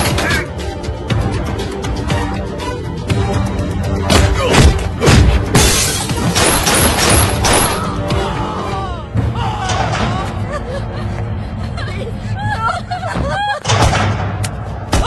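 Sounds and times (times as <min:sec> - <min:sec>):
dramatic film score: 0:00.0 - 0:15.0.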